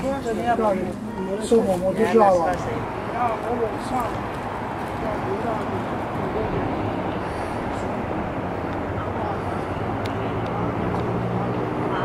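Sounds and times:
engine droning: 0:00.0 - 0:12.0
faint voices: 0:00.0 - 0:12.0
outdoor noise: 0:00.0 - 0:12.0.

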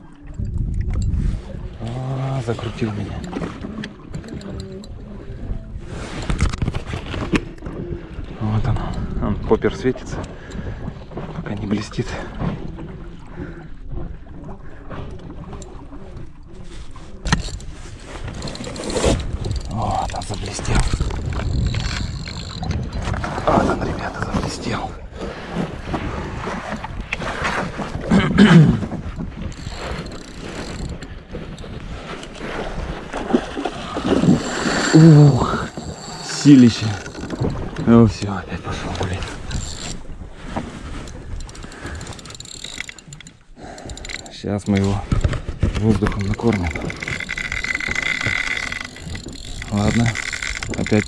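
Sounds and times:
wind buffeting microphone: 0:00.2 - 0:13.2, 0:17.2 - 0:51.0
water slapping against boat: 0:02.4 - 0:43.6, 0:44.3 - 0:51.0.

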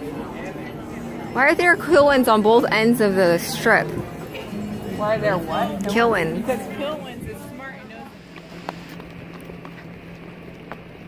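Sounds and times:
steady low hum: 0:00.0 - 0:11.0
footsteps on brick pavement: 0:03.7 - 0:11.0.

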